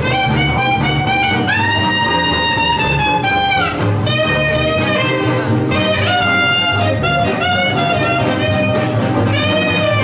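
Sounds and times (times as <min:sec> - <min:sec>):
plucked double bass: 0:00.0 - 0:10.0
saxophone melody: 0:00.0 - 0:10.0
strummed acoustic guitar: 0:00.0 - 0:10.0.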